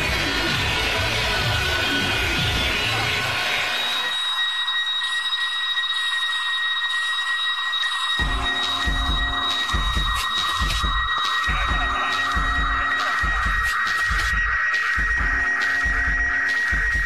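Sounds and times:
dark industrial techno: 0.0 - 17.0
steady high-pitched tones: 0.0 - 17.0.

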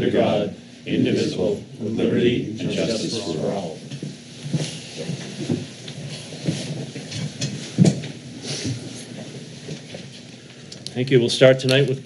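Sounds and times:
rustling and shuffling: 3.4 - 10.7
chairs shifting and knocking: 3.9 - 10.2.

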